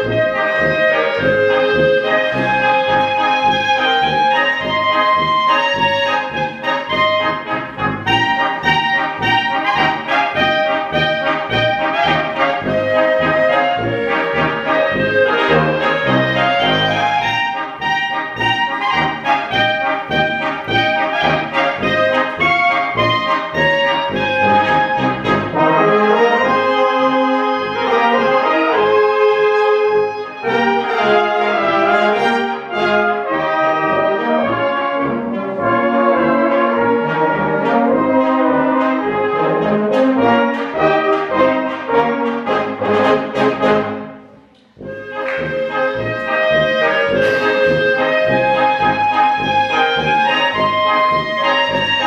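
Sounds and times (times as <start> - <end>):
brass band playing: 0.0 - 52.0.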